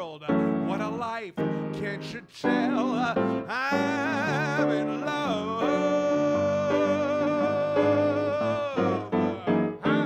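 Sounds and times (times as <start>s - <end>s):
grand piano chords: 0.3s - 10.0s
man singing long note: 2.4s - 10.0s.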